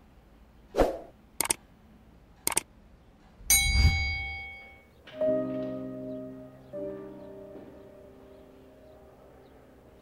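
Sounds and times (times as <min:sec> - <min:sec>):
sharp clicks: 0:01.4 - 0:01.6, 0:02.4 - 0:02.7.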